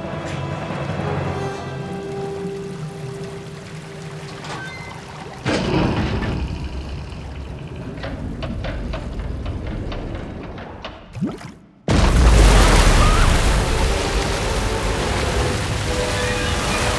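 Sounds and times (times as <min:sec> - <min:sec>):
rush of pouring water: 0:00.0 - 0:08.0, 0:11.2 - 0:16.9
tense film score: 0:00.0 - 0:16.9.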